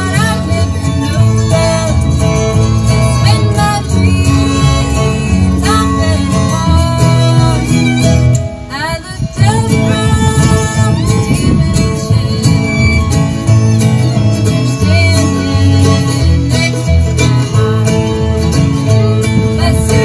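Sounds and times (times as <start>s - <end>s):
acoustic guitar: 0.0s - 20.0s
fiddle: 0.0s - 20.0s
mandolin: 0.0s - 20.0s
slide guitar: 0.0s - 20.0s
upright bass: 0.0s - 20.0s.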